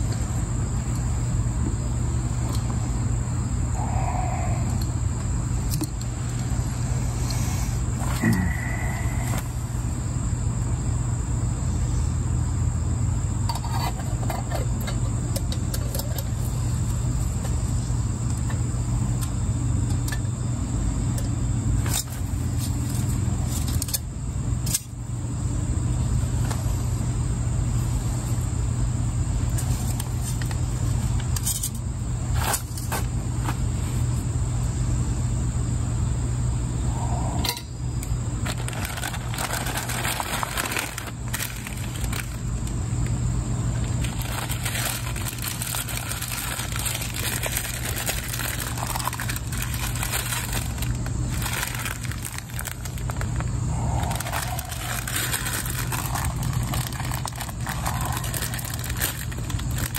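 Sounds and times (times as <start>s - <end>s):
high whine: 0.0s - 59.9s
low hum: 0.0s - 59.9s
handling camp cooking gear: 5.6s - 9.8s, 13.3s - 25.0s, 29.4s - 34.2s, 37.4s - 59.9s
rustling: 43.8s - 59.9s.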